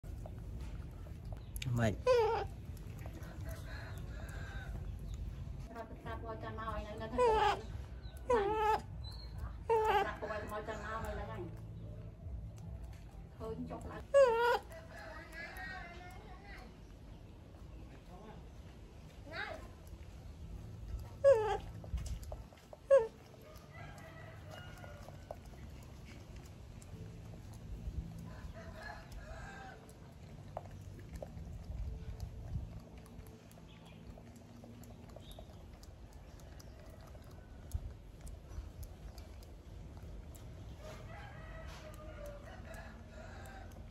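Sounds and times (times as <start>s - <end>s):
monkey call: 2.0s - 2.6s, 7.1s - 10.2s, 14.1s - 14.8s, 22.9s - 23.2s.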